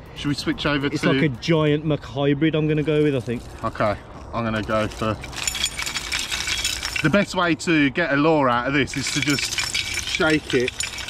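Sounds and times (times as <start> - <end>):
fishing lures rattling and clinking: 2.8 - 7.4, 8.4 - 11.0.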